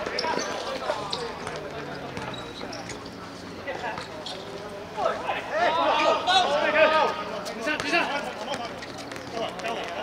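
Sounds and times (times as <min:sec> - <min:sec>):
footballers shouting: 0:04.9 - 0:10.0.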